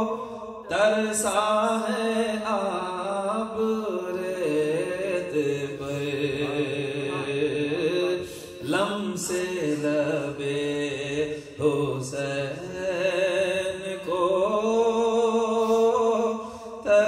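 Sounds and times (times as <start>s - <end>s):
man chanting into a microphone: 0.0s - 17.0s.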